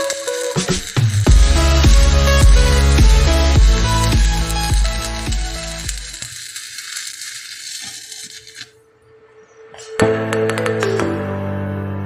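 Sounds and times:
welding arc crackling and hissing: 0.0s - 8.8s.

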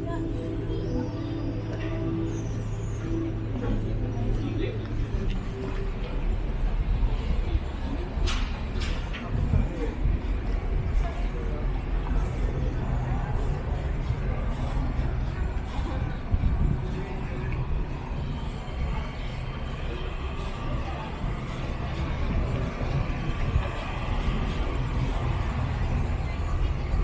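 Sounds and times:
faint voices: 0.0s - 27.0s
low urban rumble: 0.0s - 27.0s.

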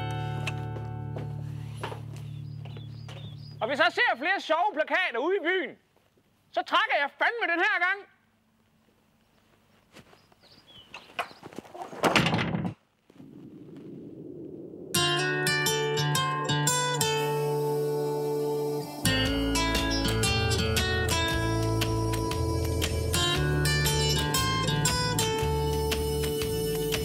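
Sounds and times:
plucked strings theme music: 15.0s - 27.0s
steady bass: 19.0s - 27.0s.

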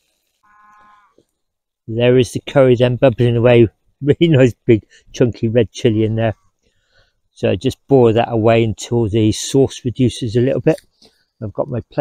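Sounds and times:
faint animal call: 0.4s - 1.2s.

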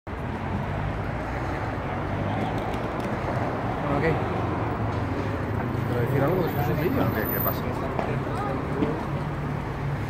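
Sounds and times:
city street traffic rumble: 0.1s - 10.0s.

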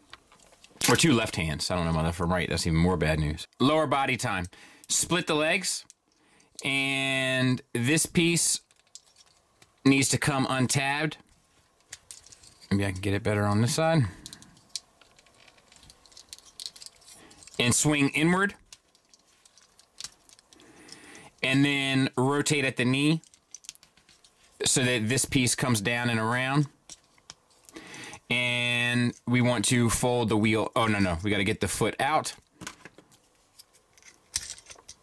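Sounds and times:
plastic toy parts clicking: 14.2s - 17.6s, 18.6s - 20.6s, 23.2s - 24.1s, 34.0s - 35.0s.

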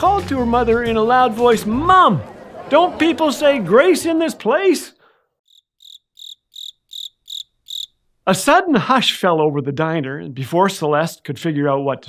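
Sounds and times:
cricket chirping: 5.5s - 8.0s.

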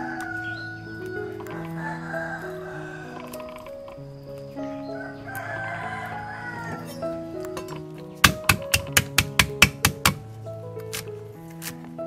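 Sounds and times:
rooster crowing: 0.0s - 7.2s
background music: 0.0s - 12.0s
cleaver chopping on wooden board: 8.2s - 10.2s.

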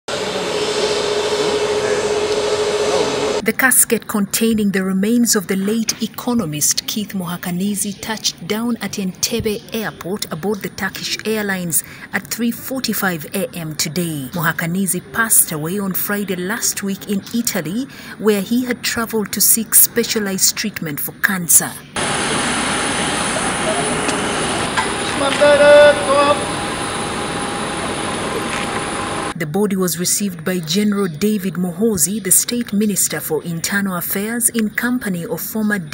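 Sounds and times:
jet engines running: 0.1s - 3.4s, 22.0s - 29.4s.

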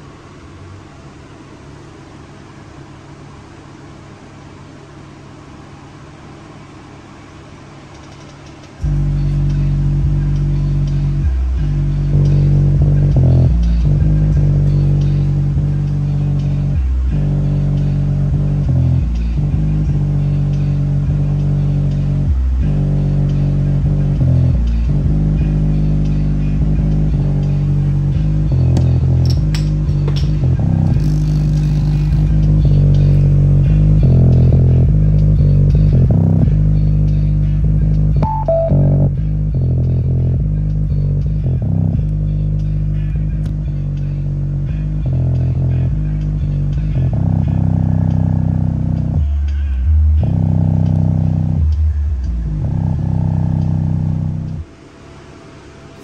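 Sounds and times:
bass-heavy guitar music from speaker: 8.8s - 54.7s.

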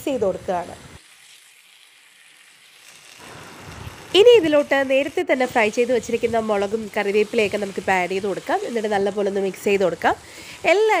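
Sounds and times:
woman talking: 0.0s - 0.8s, 4.2s - 11.0s
chicken sizzling in a pan: 0.1s - 11.0s.

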